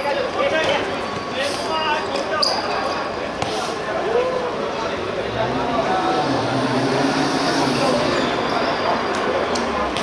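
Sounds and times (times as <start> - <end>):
players' voices: 0.0 - 10.0
steady background noise: 0.0 - 10.0.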